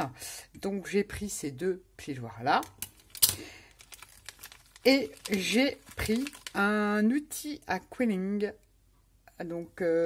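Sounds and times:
plastic bag rustling: 0:02.8 - 0:06.7.

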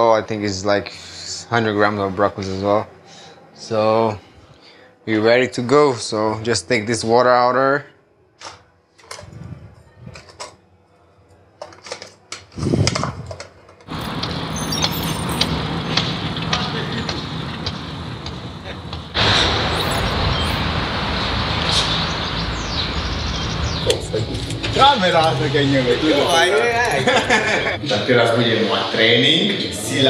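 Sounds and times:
things handled at a counter: 0:10.0 - 0:10.6, 0:11.2 - 0:15.5
steady outdoor noise: 0:11.6 - 0:30.0.

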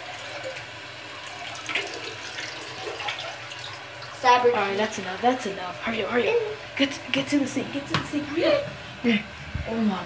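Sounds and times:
toilet flushing: 0:00.0 - 0:10.0.

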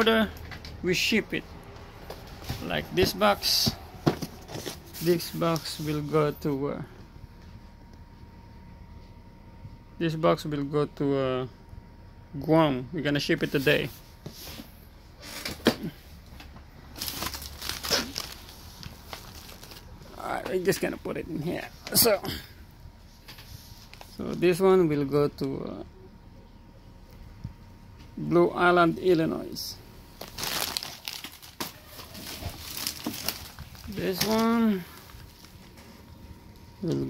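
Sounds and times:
paper and cardboard crinkling: 0:02.1 - 0:06.2, 0:16.9 - 0:20.9, 0:30.2 - 0:37.0.

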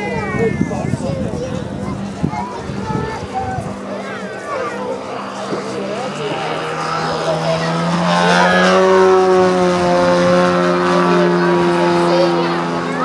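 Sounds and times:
model plane engine at high throttle: 0:00.0 - 0:13.0.

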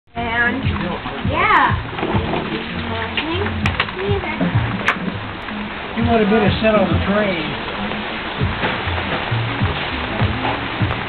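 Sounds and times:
rain falling: 0:00.1 - 0:11.0.

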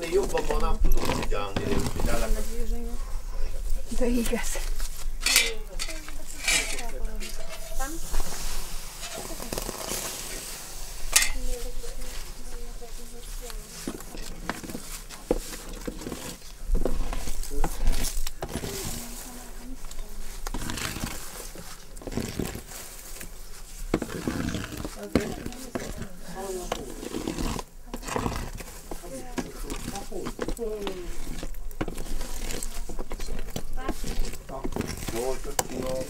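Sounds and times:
metal rake scraping over embers: 0:00.0 - 0:02.7, 0:03.9 - 0:36.0
coals dragged with sharp clinks: 0:03.9 - 0:36.0.

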